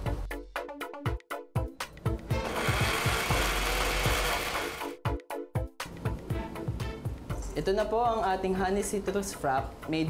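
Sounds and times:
background music with steady beat: 0.0 - 10.0
blender blending ice: 2.4 - 5.0.

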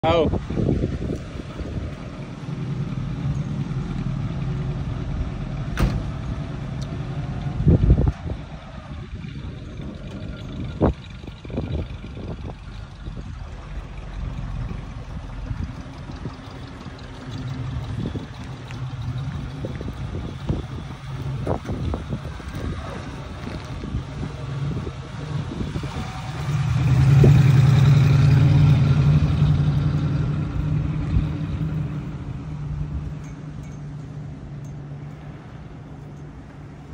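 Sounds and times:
car engine running: 0.5 - 36.9
car accelerating: 0.8 - 33.2.

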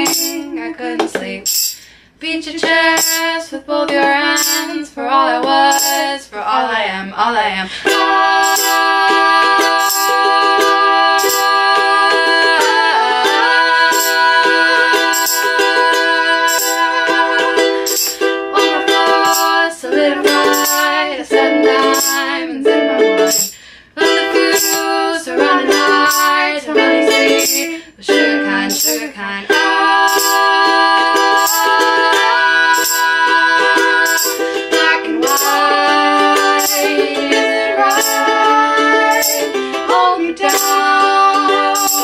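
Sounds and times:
tambourine jingles: 0.0 - 0.4, 1.5 - 1.9, 3.0 - 3.3, 4.4 - 4.8, 5.7 - 6.1, 8.4 - 8.9, 9.5 - 10.5, 11.2 - 11.7, 13.8 - 21.1, 21.7 - 22.3, 23.1 - 23.7, 24.5 - 25.0, 25.7 - 26.5, 27.1 - 27.7, 28.7 - 29.1, 30.0 - 39.7, 40.4 - 42.0
ukulele strumming: 0.0 - 2.0, 2.6 - 6.2, 7.8 - 42.0
two women singing in harmony: 0.0 - 42.0.

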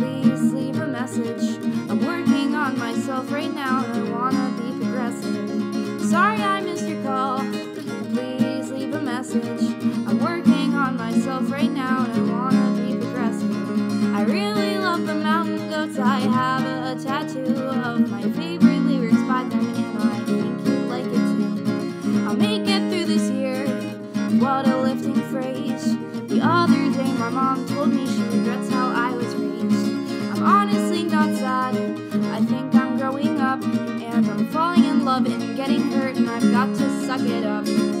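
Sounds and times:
strummed acoustic guitar: 0.0 - 38.0
woman singing: 0.0 - 38.0.

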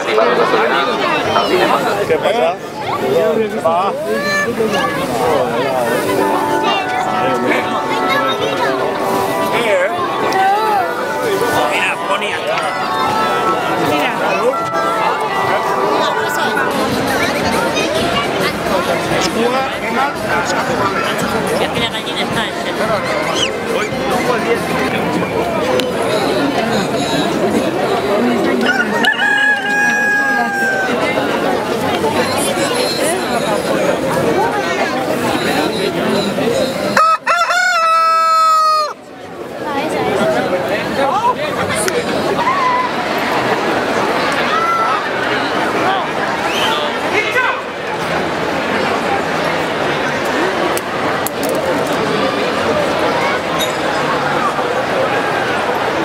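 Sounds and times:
crowd chatter: 0.0 - 56.0
rooster crowing: 28.6 - 31.0, 37.0 - 39.0.

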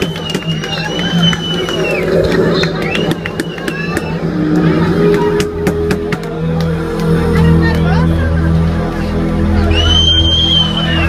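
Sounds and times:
crowd voices: 0.0 - 11.0.

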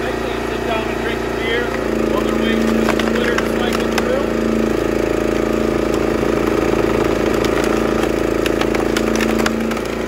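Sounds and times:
small gas engine running: 0.0 - 10.0.

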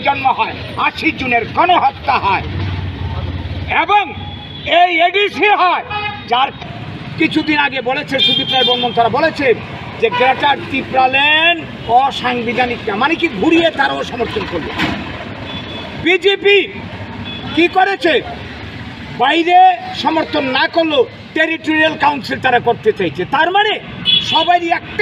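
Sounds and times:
man talking: 0.0 - 2.5, 3.7 - 14.9, 16.0 - 16.8, 17.5 - 18.4, 19.2 - 25.0
engine rumbling: 0.0 - 4.5
road traffic noise: 0.0 - 25.0.

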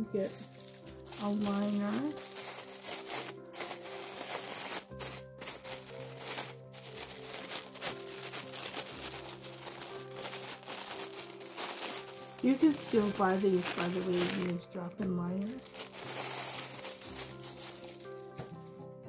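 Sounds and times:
background music: 0.0 - 19.0
plastic liner crinkling: 0.2 - 18.5.

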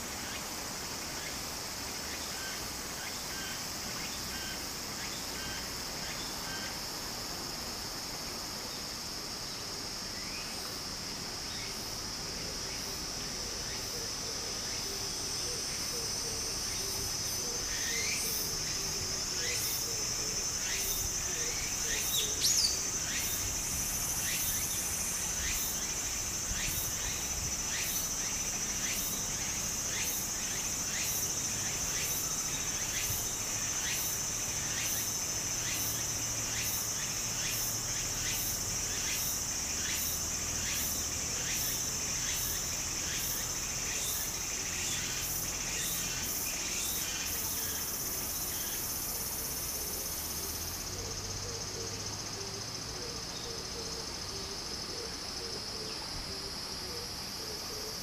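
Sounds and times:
cicada pulsing call: 0.0 - 58.0
cicadas droning: 0.0 - 58.0.

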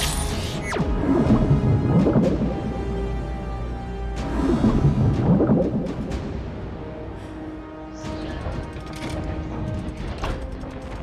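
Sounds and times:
orchestral score: 0.0 - 11.0.

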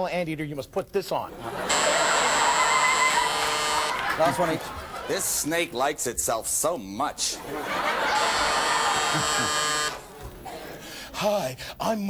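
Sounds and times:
game show buzzer: 1.4 - 4.4, 7.8 - 10.1.

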